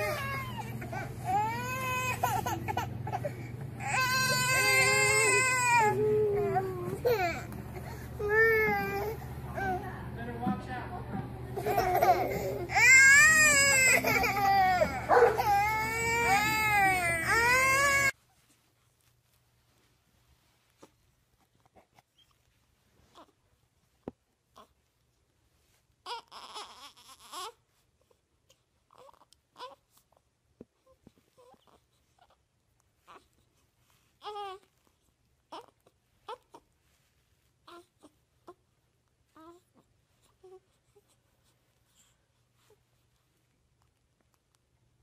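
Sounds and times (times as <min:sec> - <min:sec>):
baby crying: 0:00.0 - 0:09.8, 0:11.6 - 0:18.2, 0:26.1 - 0:27.6
infant grunts and coos: 0:00.0 - 0:09.8.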